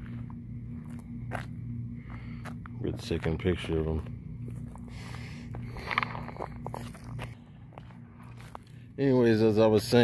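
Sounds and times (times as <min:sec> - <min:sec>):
footsteps on gravel: 0:00.0 - 0:09.2
faint low hum: 0:00.0 - 0:10.0.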